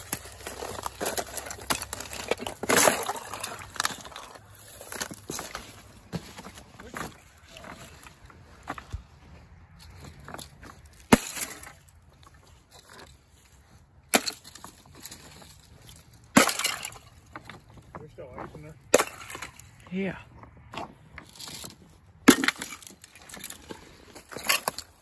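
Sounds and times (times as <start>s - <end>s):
tinkling crackle of ice shards: 0.0s - 5.6s, 14.2s - 17.2s, 22.3s - 25.0s
ice cracking and shattering: 0.0s - 5.8s, 11.0s - 11.9s, 14.1s - 15.2s, 16.4s - 17.2s, 22.3s - 25.0s.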